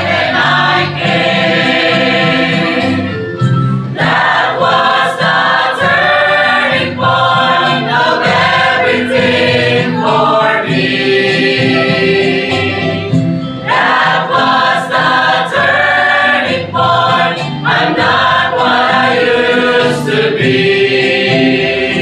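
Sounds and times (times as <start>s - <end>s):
mixed choir singing a hymn: 0.0s - 3.2s, 3.9s - 22.0s.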